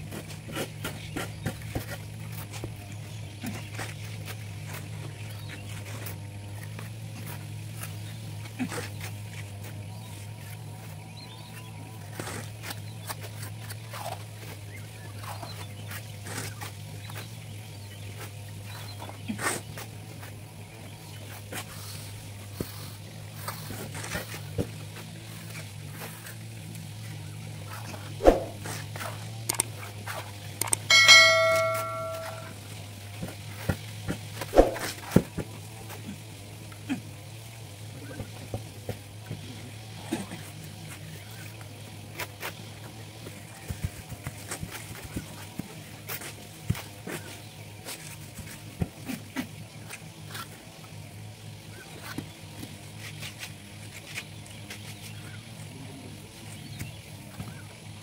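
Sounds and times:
shovel and trowel scraping: 28.2 - 28.8
bell-like chime: 30.9 - 32.6.

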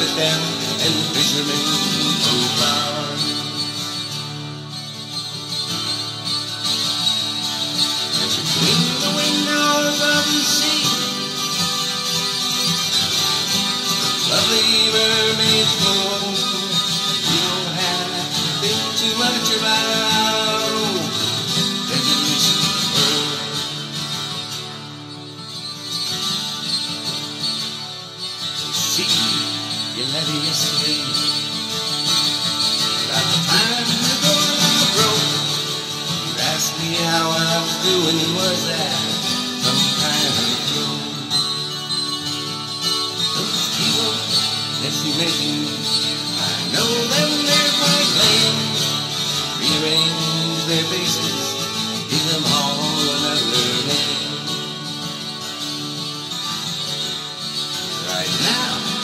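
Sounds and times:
acoustic guitar: 0.0 - 59.0.

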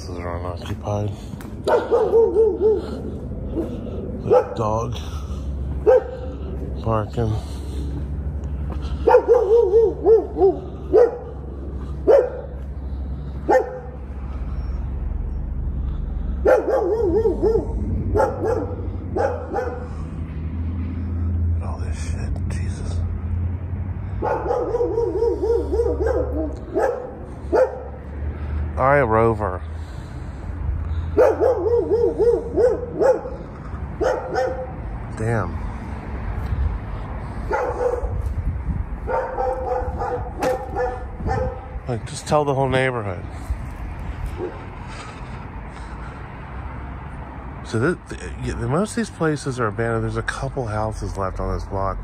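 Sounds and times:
dog barking: 1.6 - 4.7, 5.8 - 6.3, 9.0 - 11.4, 12.0 - 12.6, 13.4 - 14.0, 16.4 - 19.9, 24.2 - 28.0, 31.1 - 33.4, 34.0 - 34.8, 37.5 - 38.2, 39.0 - 41.8.

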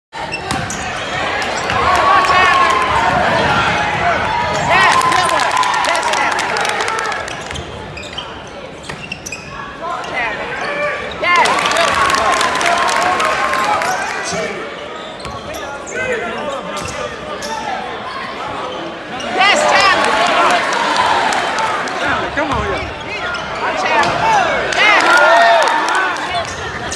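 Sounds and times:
crowd chatter: 0.1 - 26.9
sneaker squeaks: 0.2 - 1.8, 7.3 - 11.3, 14.0 - 17.9, 22.4 - 24.2.

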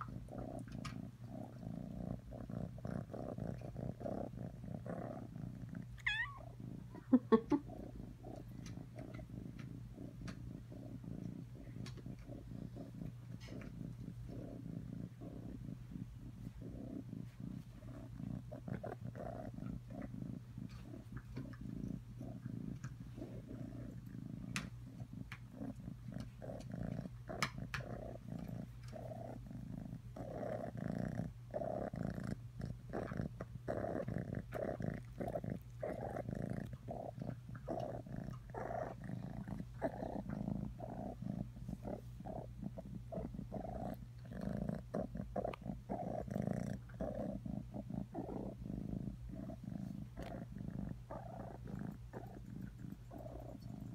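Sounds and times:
kitten purring: 0.0 - 53.9.

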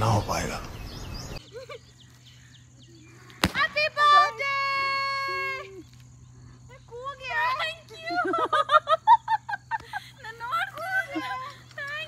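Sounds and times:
laughter: 1.4 - 2.0, 8.0 - 10.2.

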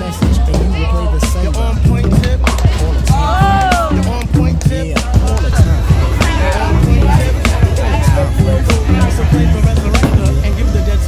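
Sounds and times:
background music with singing: 0.0 - 11.0.

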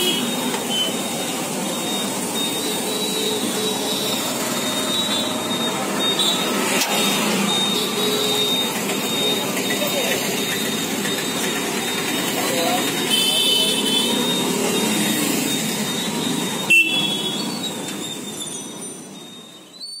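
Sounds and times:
traffic: 0.0 - 20.0
car horn toots: 13.0 - 14.3, 16.6 - 17.5.

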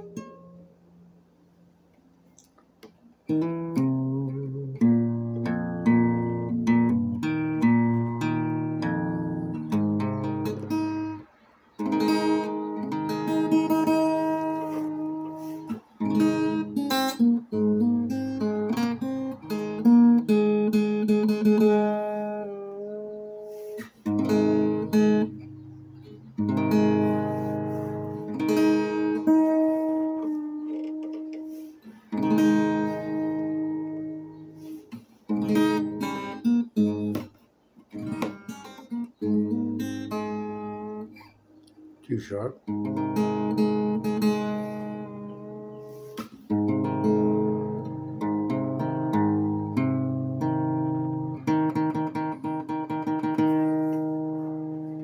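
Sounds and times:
acoustic guitar strumming and picking: 0.0 - 1.2, 2.8 - 55.0.

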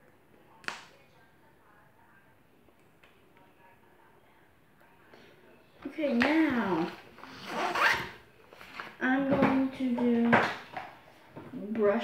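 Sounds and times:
zipper pulled: 6.8 - 8.2.

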